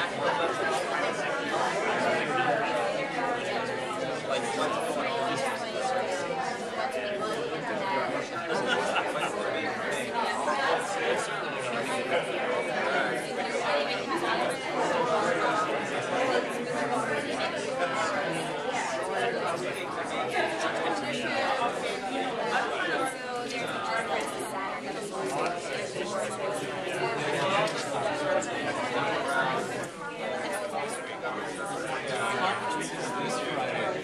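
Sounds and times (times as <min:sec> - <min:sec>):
murmur of many voices: 0:00.0 - 0:34.0.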